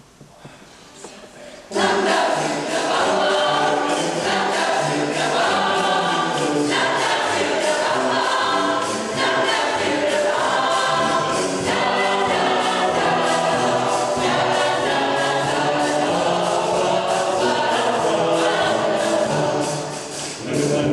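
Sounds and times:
boys' choir singing: 0:01.7 - 0:20.9
brass band accompanying: 0:01.7 - 0:20.9.

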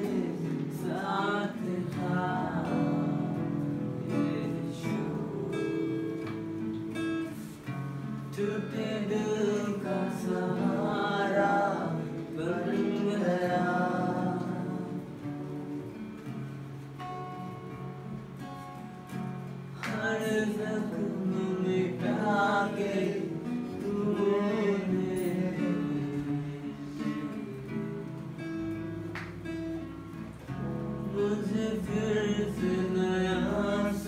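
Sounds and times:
person singing: 0:00.0 - 0:06.6, 0:08.3 - 0:16.1
acoustic guitar: 0:00.0 - 0:34.0.

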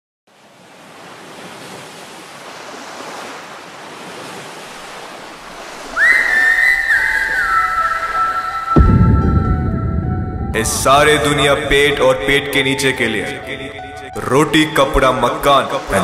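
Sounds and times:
high whistling tone: 0:05.9 - 0:11.6.

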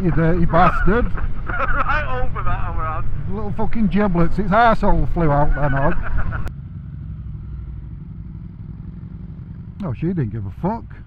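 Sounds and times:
road and wind noise: 0:00.0 - 0:11.0
motorcycle engine running: 0:05.3 - 0:11.0.

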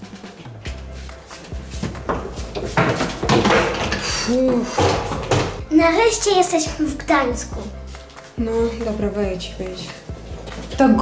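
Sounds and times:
background music: 0:00.0 - 0:11.0
rolling suitcases knocking: 0:01.5 - 0:05.7.

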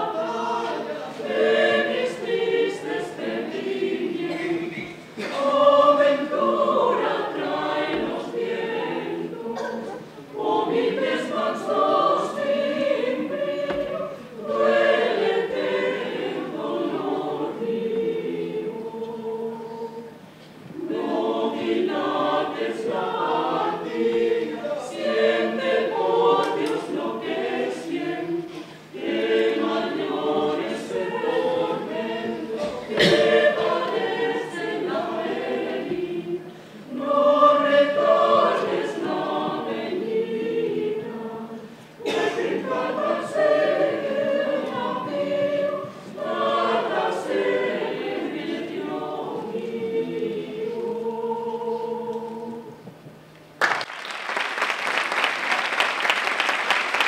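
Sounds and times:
mixed choir singing a cappella: 0:00.0 - 0:53.2.

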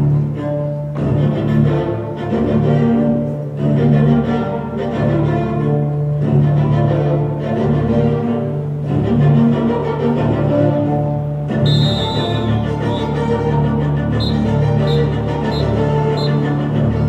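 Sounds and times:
low bowed strings music: 0:00.0 - 0:17.0.

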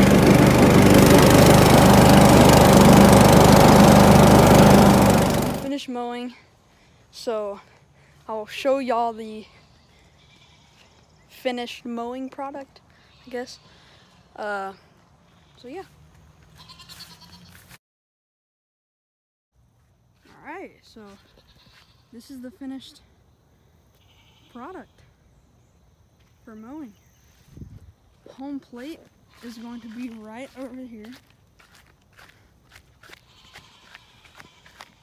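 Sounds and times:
faint outdoor background noise: 0:05.7 - 0:17.6, 0:19.6 - 0:35.0
footsteps through grass: 0:14.9 - 0:17.8, 0:21.0 - 0:22.4, 0:27.2 - 0:35.0.

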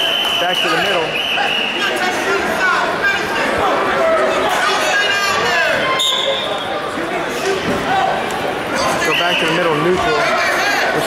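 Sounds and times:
referee's whistle blast: 0:00.0 - 0:01.9, 0:05.9 - 0:06.6
crowd chatter: 0:00.0 - 0:11.0.

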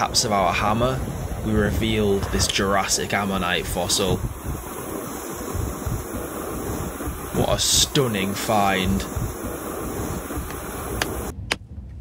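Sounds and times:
water rushing: 0:00.0 - 0:11.3
wind rushing: 0:00.0 - 0:11.5
low rumble: 0:00.0 - 0:12.0.

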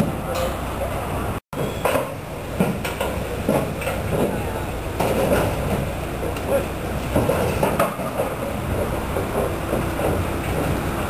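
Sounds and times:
cattle hooves clattering on boards: 0:01.6 - 0:11.0.

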